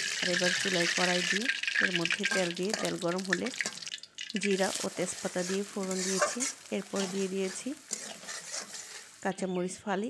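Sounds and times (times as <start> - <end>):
onion sizzling in hot oil: 0.0 - 9.6
metal spatula scraping pan: 2.4 - 3.0, 5.1 - 9.2
woman speaking: 4.4 - 7.8, 9.2 - 10.0.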